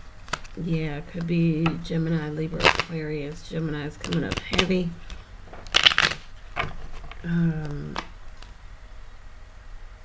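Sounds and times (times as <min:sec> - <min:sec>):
cards being shuffled: 0:00.2 - 0:08.6.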